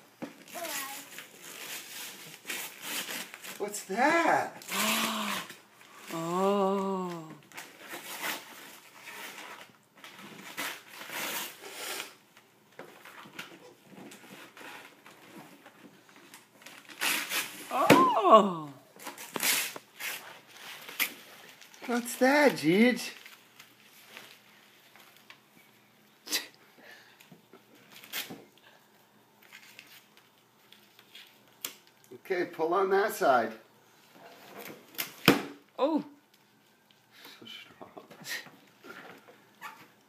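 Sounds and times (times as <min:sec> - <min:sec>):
wrapping paper tearing: 0:00.5 - 0:03.6, 0:04.6 - 0:12.2, 0:16.6 - 0:17.8, 0:19.0 - 0:22.2.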